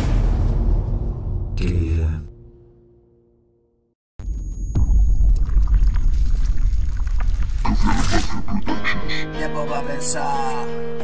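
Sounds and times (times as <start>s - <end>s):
crackles: 4.8s - 8.5s.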